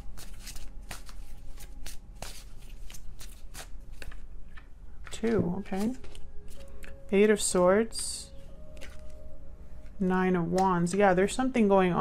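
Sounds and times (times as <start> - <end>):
cards being shuffled: 0.0 - 7.6, 8.7 - 9.2.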